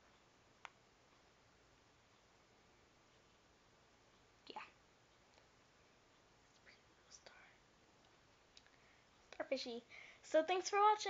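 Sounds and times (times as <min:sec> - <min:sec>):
faint whisper: 0:06.5 - 0:07.6.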